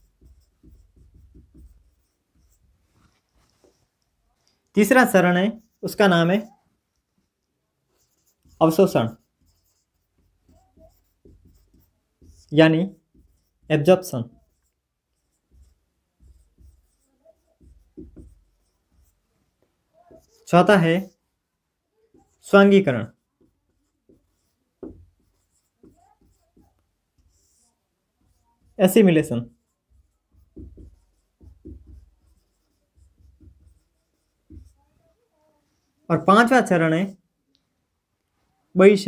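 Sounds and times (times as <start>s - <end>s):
marker writing on whiteboard: 0.0s - 21.2s, 22.0s - 37.2s.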